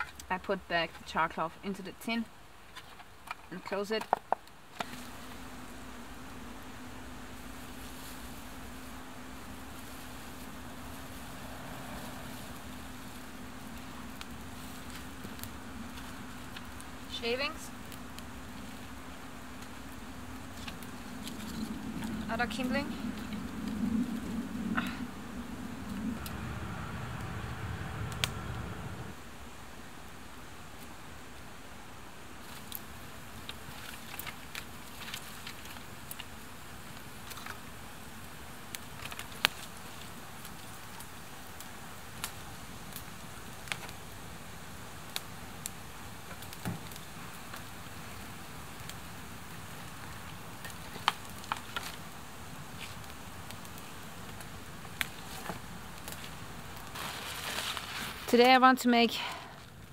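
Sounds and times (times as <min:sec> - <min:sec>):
campfire crackling and popping: 0:00.0 - 0:59.9
fire hissing: 0:04.6 - 0:59.9
loud rushing noise: 0:21.7 - 0:29.2.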